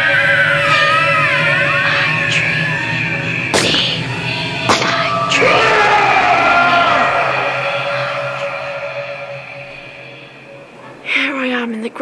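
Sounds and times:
long wailing cry: 0.0 - 10.8
music score: 0.8 - 11.1.

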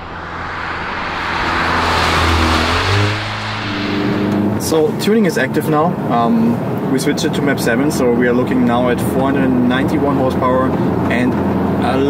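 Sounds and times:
car driving past: 0.0 - 5.6
road noise: 0.0 - 6.1.

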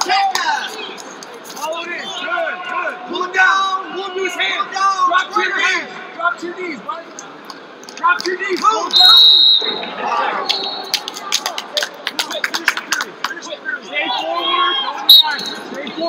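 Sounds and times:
coaches shouting: 1.7 - 7.1, 8.0 - 11.8, 13.0 - 16.0
referee whistle blast: 8.9 - 9.8, 14.8 - 15.7.

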